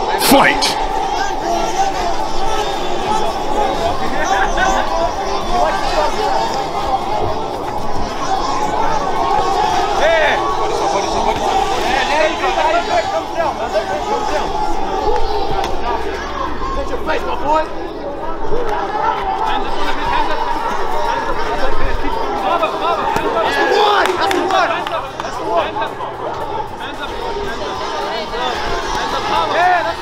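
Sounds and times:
spectators chattering and calling out: 0.0 - 30.0.

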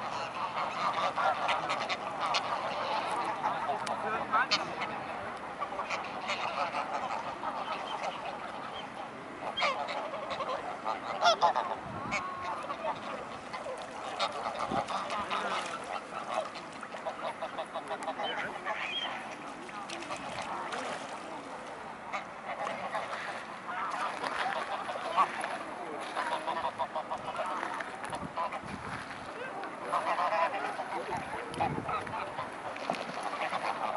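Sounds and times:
geese honking: 0.0 - 21.4, 22.1 - 33.9.

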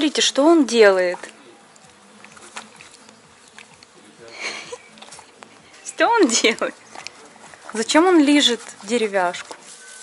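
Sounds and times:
fly buzzing: 0.6 - 10.0
horse licking wooden rail: 0.8 - 9.9.

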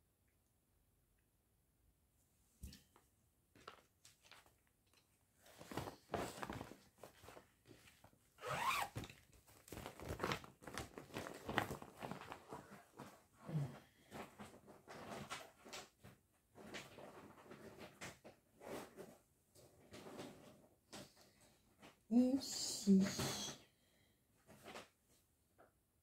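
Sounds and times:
rummaging through things: 3.5 - 23.5.

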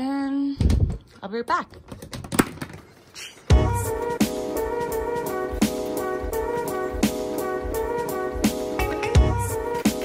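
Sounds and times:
music with brass: 3.5 - 10.0.

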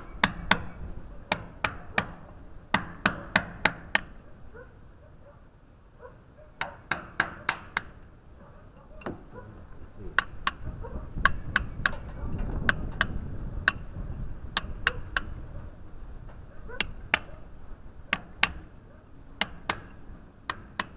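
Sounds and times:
hammer striking steel chisel: 0.1 - 4.2, 6.6 - 8.0, 10.2 - 10.6, 11.2 - 12.0, 14.6 - 15.3, 18.1 - 18.6, 19.4 - 20.9.

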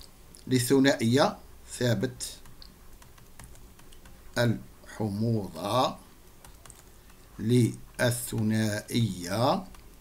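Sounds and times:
stylus tapping on tablet screen: 6.4 - 7.3.

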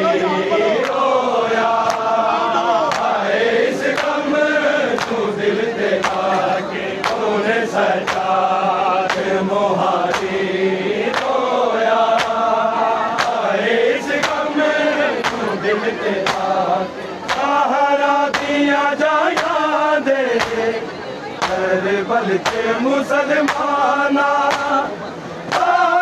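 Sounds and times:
men chanting a lament: 0.0 - 26.0
chest-beating slaps: 15.2 - 15.5.

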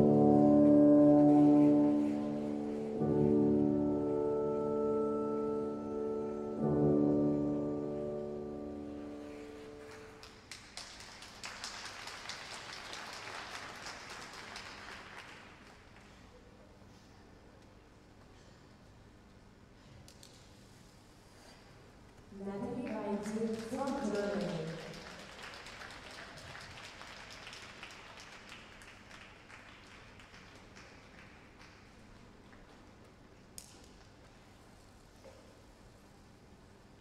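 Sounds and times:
audience applause: 1.0 - 3.0, 9.6 - 16.2, 23.3 - 32.0.

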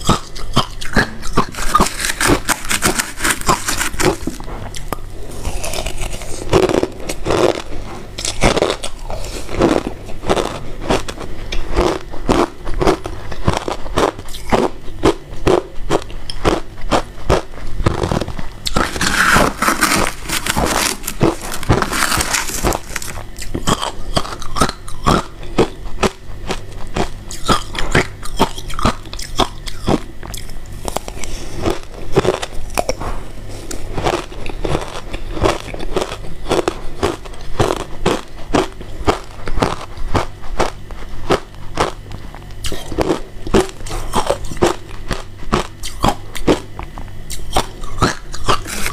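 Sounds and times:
ice crunching being chewed: 0.0 - 48.9.

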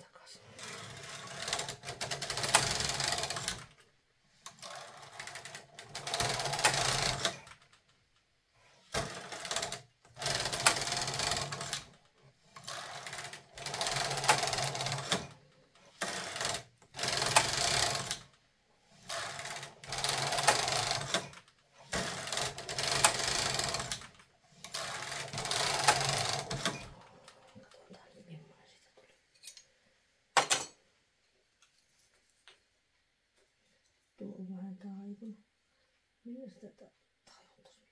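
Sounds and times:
knitting machine carriage clatter: 0.6 - 3.8, 4.5 - 7.8, 8.9 - 18.4, 19.0 - 27.0.

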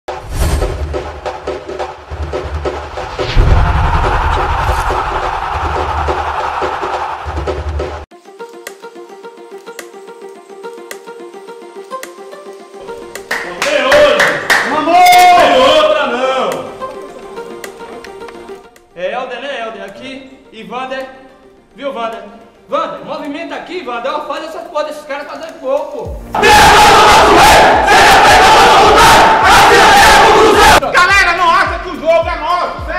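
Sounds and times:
loud voices: 3.6 - 7.6, 26.3 - 30.9
music with held notes and ticking beat: 8.1 - 13.5.

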